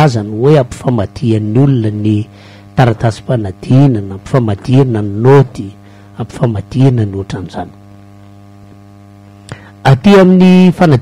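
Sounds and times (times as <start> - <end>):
man's voice: 0.0 - 7.8, 9.8 - 11.0
electrical mains hum: 0.0 - 11.0.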